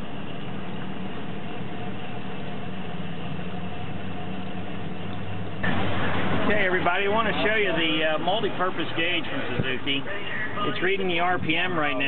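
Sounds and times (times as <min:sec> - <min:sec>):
outboard motor idling: 0:00.0 - 0:12.0.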